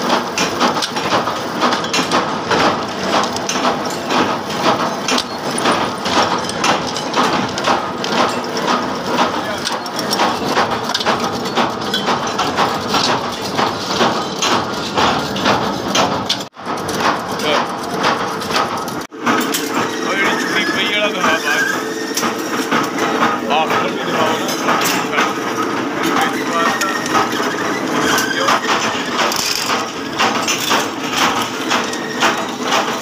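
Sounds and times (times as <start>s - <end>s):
tapping machines clattering: 0.0s - 33.0s.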